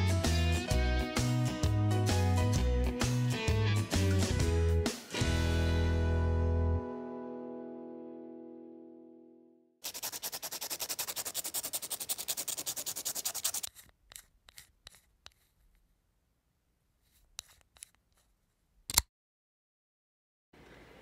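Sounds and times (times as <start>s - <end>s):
tip scraping on sandpaper: 9.8s - 15.8s, 17.0s - 18.3s
faint rubs: 9.8s - 16.0s, 17.0s - 18.4s.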